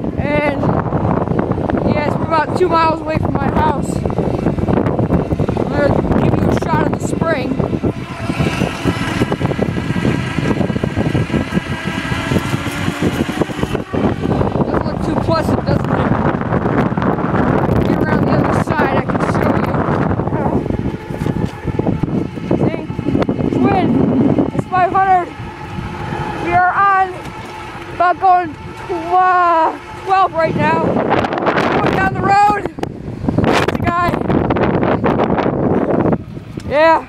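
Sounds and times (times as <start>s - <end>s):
faint motor whine: 0.0s - 37.0s
scooter wheels rumbling and rattling: 0.0s - 37.0s
wind and road noise: 0.0s - 37.0s.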